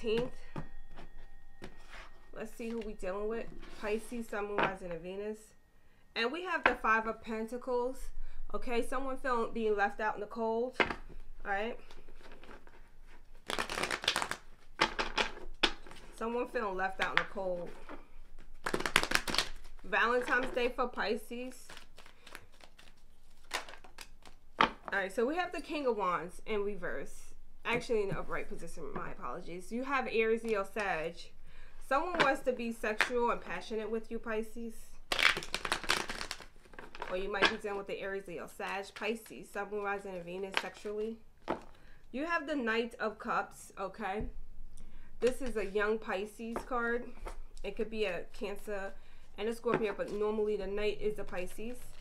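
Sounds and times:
cards being shuffled: 0:11.8 - 0:16.2, 0:16.9 - 0:20.6, 0:21.6 - 0:24.9, 0:35.1 - 0:37.8.

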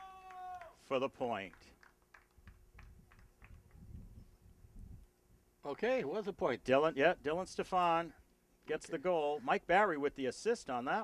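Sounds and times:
wind buffeting microphone: 0:02.4 - 0:05.1.

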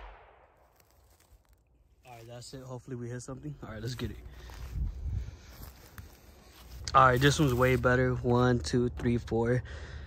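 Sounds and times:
rifle shot echo: 0:00.0 - 0:00.8.

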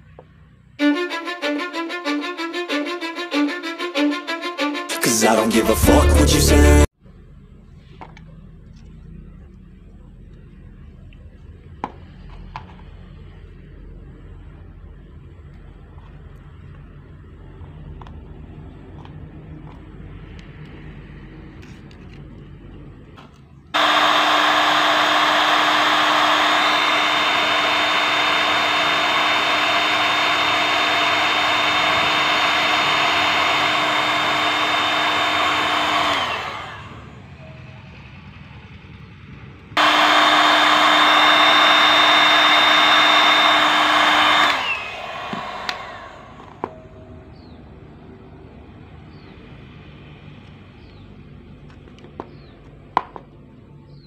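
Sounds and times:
heat gun blowing with fan whine: 0:23.8 - 0:37.3, 0:39.8 - 0:46.8.

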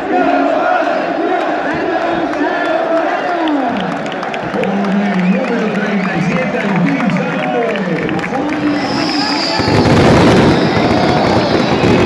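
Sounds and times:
crowd singing: 0:00.0 - 0:03.3
fireworks crackling: 0:08.4 - 0:12.0.

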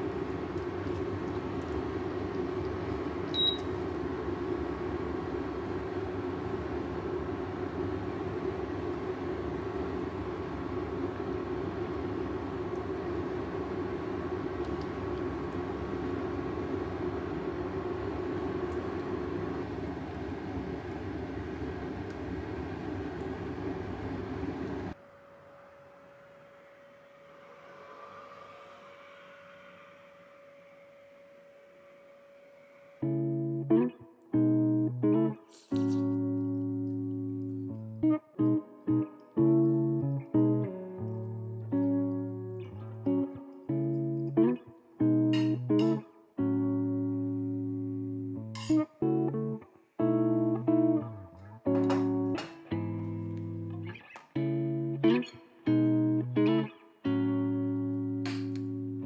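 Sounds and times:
kitchen fan whirring: 0:00.0 - 0:27.8, 0:48.5 - 0:48.8, 0:51.6 - 0:53.2, 0:58.2 - 0:59.0
faint whine: 0:00.0 - 0:34.3
faint hum: 0:00.0 - 0:59.0.

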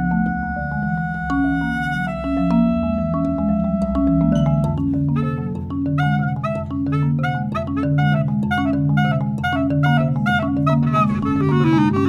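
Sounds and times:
bass clarinet low held notes: 0:00.0 - 0:12.0
marimba notes struck with mallets: 0:00.0 - 0:12.0.

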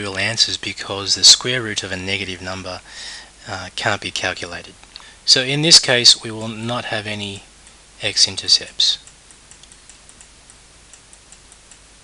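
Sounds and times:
low hum and hiss: 0:00.0 - 0:12.0
computer mouse clicks: 0:09.0 - 0:11.8.

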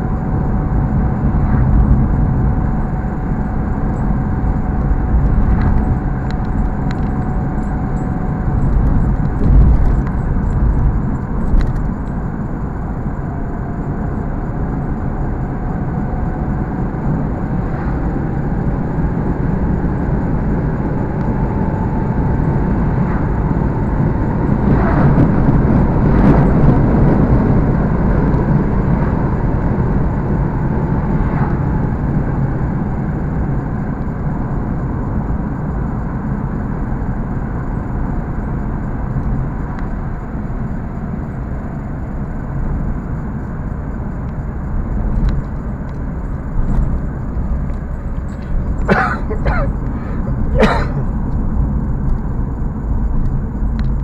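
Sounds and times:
road and engine noise in car: 0:00.0 - 0:54.0.

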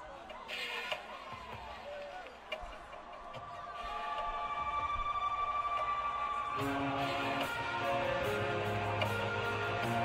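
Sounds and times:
concert audience noise: 0:00.0 - 0:10.0.

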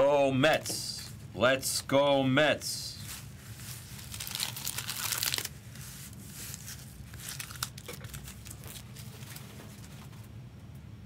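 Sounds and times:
card packs crinkling and rustling: 0:03.0 - 0:10.3.

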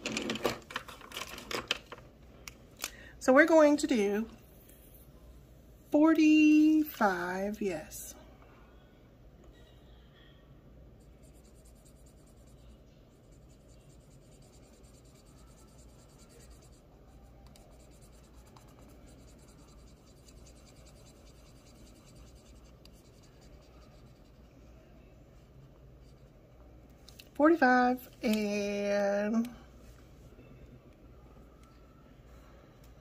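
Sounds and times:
pen scratching on paper: 0:11.0 - 0:16.9, 0:17.5 - 0:24.4.

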